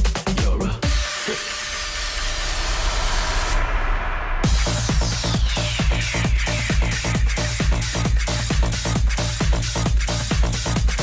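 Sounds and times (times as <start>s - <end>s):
electronic dance music: 0.0s - 11.0s
low bass pulse: 0.6s - 11.0s.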